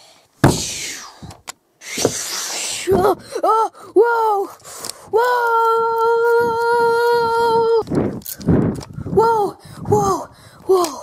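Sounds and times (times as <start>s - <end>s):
breathy gasps: 2.3s - 5.1s, 9.6s - 10.7s
child yelling: 2.7s - 7.8s, 9.1s - 11.0s.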